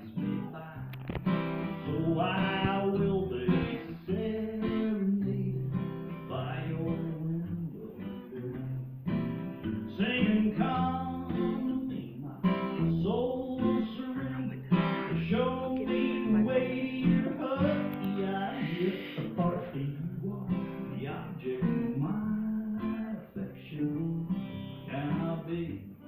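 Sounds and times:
acoustic guitars strumming: 0:00.0 - 0:26.0.

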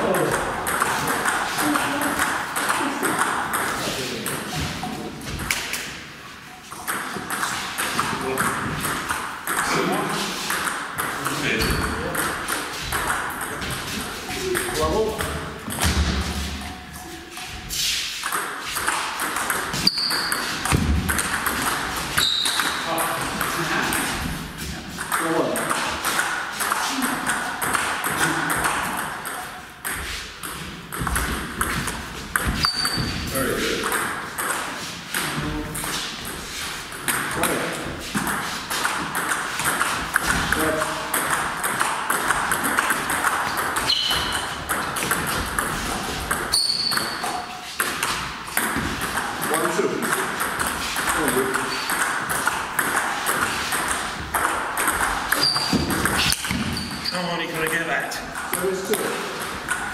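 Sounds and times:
ping pong ball clicking: 0:00.1 - 0:04.5, 0:06.8 - 0:09.8, 0:18.2 - 0:24.1, 0:41.0 - 0:56.7, 0:58.3 - 0:59.9.

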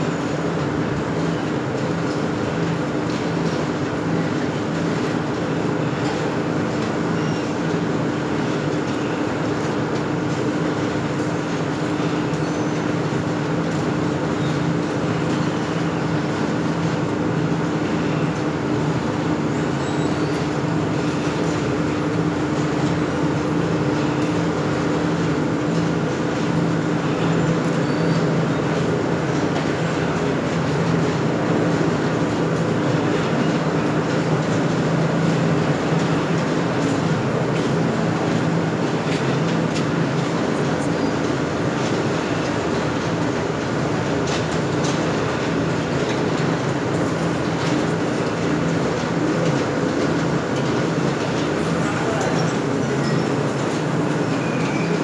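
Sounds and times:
loud machine noise humming: 0:00.0 - 0:55.0.

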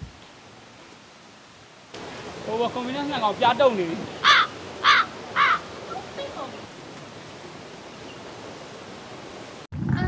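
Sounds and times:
outdoor background rush: 0:00.0 - 0:10.0.

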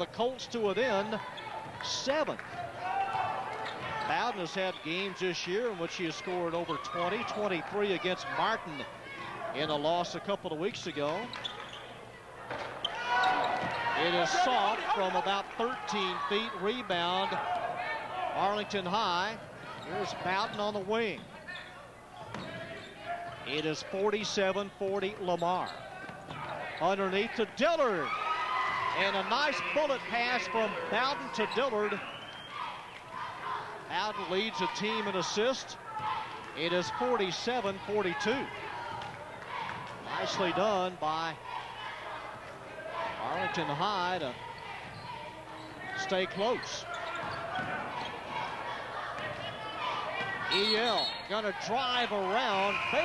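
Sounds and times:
basketball court noise: 0:00.0 - 0:53.0
faint crowd chatter: 0:00.0 - 0:53.0.

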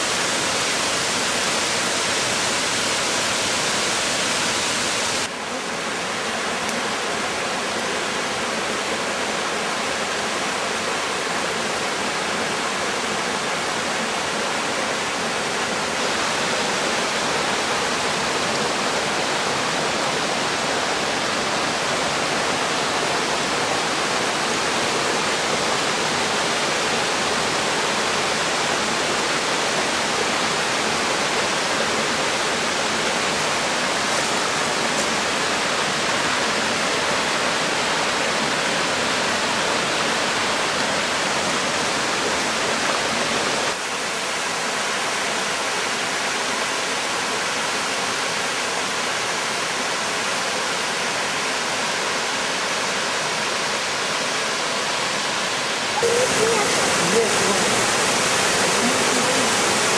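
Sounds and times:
waterfall roaring: 0:00.0 - 0:59.9.

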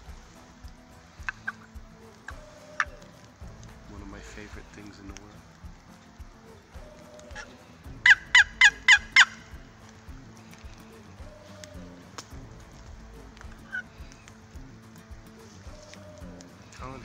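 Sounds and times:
turkey box call yelps: 0:01.2 - 0:03.6, 0:06.2 - 0:09.7, 0:10.5 - 0:14.5, 0:15.2 - 0:17.0.

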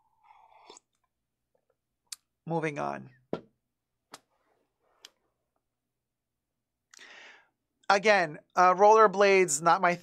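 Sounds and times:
slurp and swallow of drink: 0:00.2 - 0:01.1.

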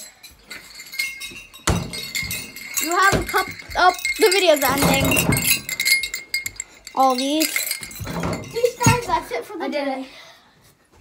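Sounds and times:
light metallic clinking: 0:00.0 - 0:09.3
ball thumping on door: 0:01.6 - 0:03.5.

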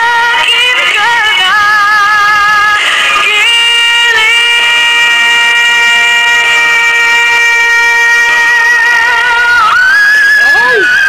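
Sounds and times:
woman singing pop: 0:00.0 - 0:11.0.

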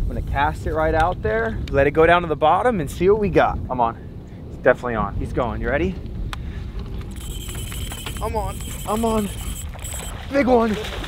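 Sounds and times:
wind rumble on microphone: 0:00.0 - 0:11.0
fishing reel line whine: 0:07.1 - 0:10.6.

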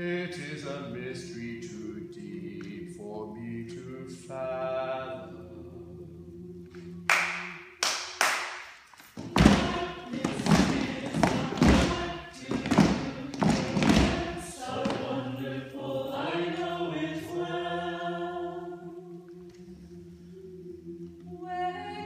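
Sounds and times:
group singing in harmony: 0:00.0 - 0:07.8, 0:09.2 - 0:22.0
knocks: 0:09.2 - 0:15.0
regular thuds: 0:09.2 - 0:15.1.

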